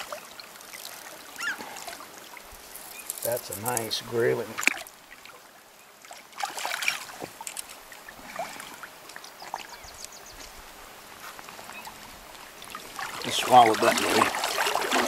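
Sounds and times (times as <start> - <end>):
splashing in shallow water: 0.0 - 10.7, 11.4 - 15.0
river running: 0.0 - 15.0.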